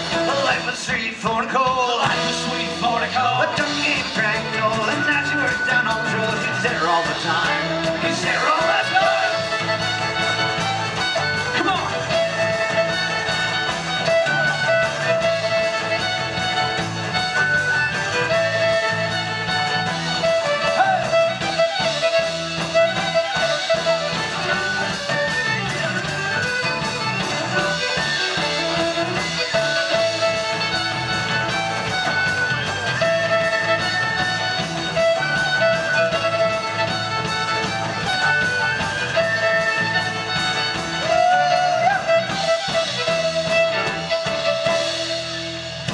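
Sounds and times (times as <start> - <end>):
fiddle playing bowed notes: 0.0 - 0.8, 2.4 - 45.9
banjo: 0.0 - 45.9
electric bass: 0.0 - 45.9.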